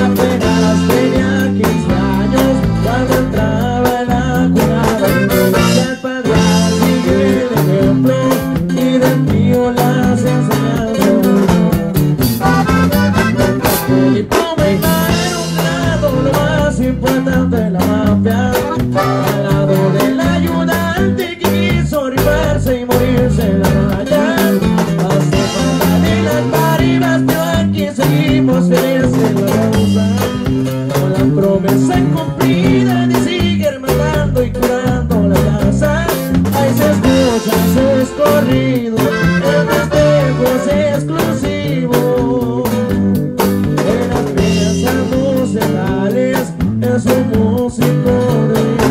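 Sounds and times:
bass line: 0.0s - 48.9s
plucked and strummed guitars: 0.0s - 48.9s.

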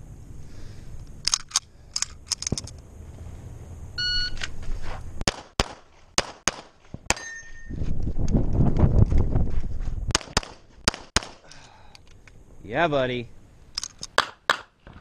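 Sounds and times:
shot timer beep: 4.0s - 4.4s
pistol shots: 5.2s - 7.3s, 10.1s - 11.4s.

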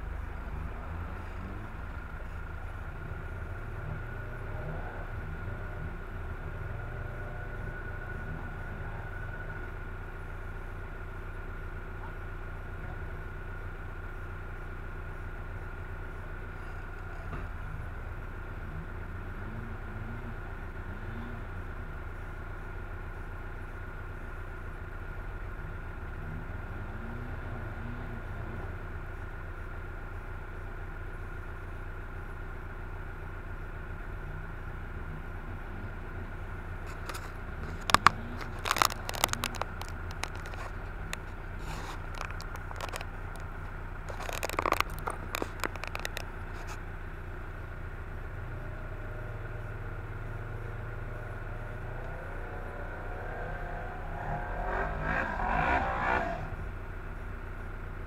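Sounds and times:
engine revving: 0.0s - 9.6s, 36.8s - 46.3s, 48.4s - 57.0s
vehicle engine idling: 0.0s - 58.0s.

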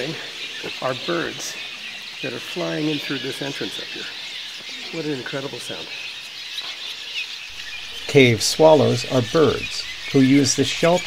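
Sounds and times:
swallows chirping: 0.0s - 11.0s.

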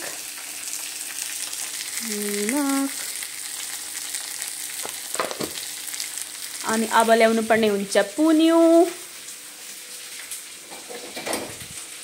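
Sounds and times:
food sizzling in hot oil: 0.0s - 12.0s
person humming: 2.0s - 3.0s.

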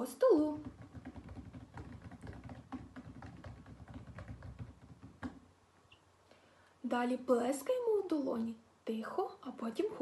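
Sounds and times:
fingertips tapping on tabletop: 0.5s - 5.4s.

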